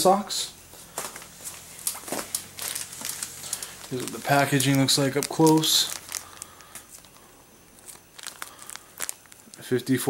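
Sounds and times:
plastic package crinkling: 0.9s - 10.0s.

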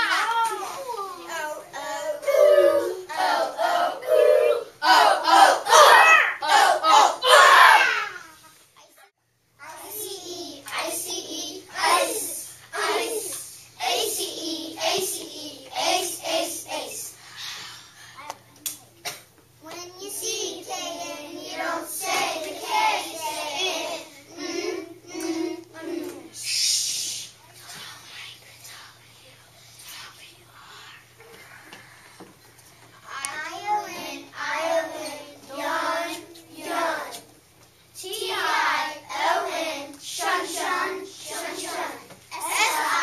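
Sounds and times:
children chanting in unison: 1.8s - 7.9s, 20.2s - 26.3s, 38.0s - 43.0s.

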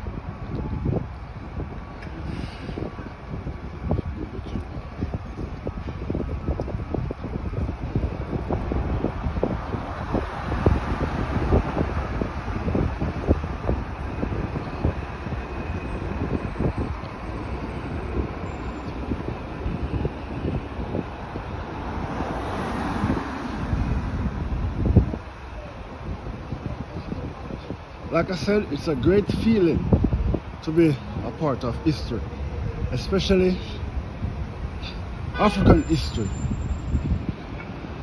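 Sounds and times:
city street traffic: 0.0s - 38.0s
wind buffeting microphone: 0.0s - 38.0s.

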